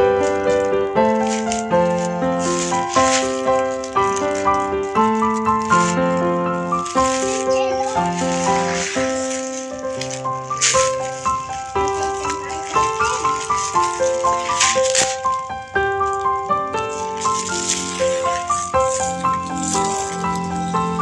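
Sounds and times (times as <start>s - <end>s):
bright instrumental music: 0.0s - 21.0s
plastic packaging crinkling: 0.0s - 21.0s.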